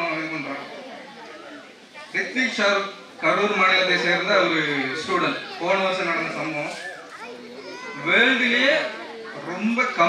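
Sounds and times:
man speaking through public address: 0.0s - 1.0s, 2.0s - 10.0s
children's voices: 0.0s - 10.0s.

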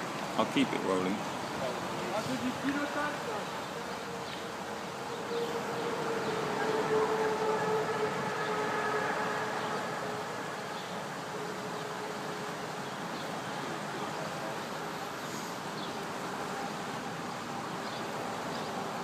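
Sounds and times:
boat engine humming: 0.0s - 19.0s.

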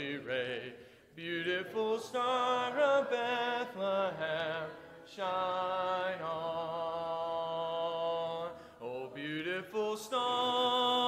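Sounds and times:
man singing a hymn: 0.0s - 11.0s
singer breathing: 0.8s - 1.2s, 8.5s - 8.8s.

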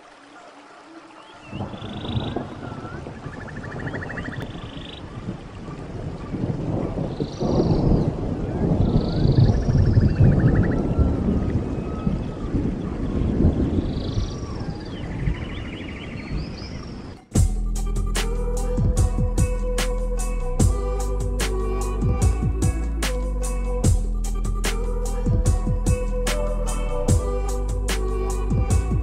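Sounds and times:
thunder rumbling: 1.5s - 15.5s
high calls and buzzy trills: 17.0s - 29.0s.

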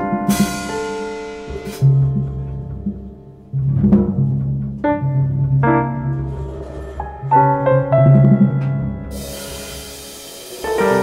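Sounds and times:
low bass notes: 0.0s - 9.8s
digital piano chords: 0.0s - 11.0s
sharp percussion hit: 0.3s - 2.0s.

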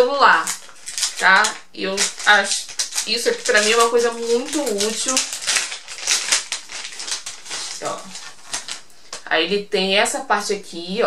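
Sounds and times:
plastic bag crinkling: 0.3s - 9.3s.

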